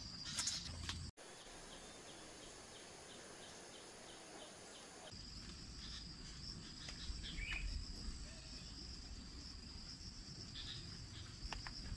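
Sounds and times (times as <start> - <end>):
insects trilling: 0.0 - 11.9.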